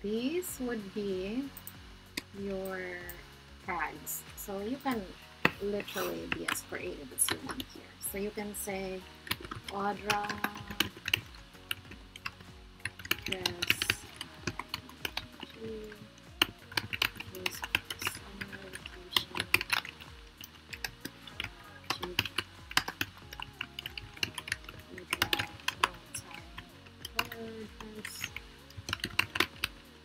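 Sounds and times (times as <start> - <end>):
computer keyboard typing: 4.8 - 7.8, 9.0 - 29.9.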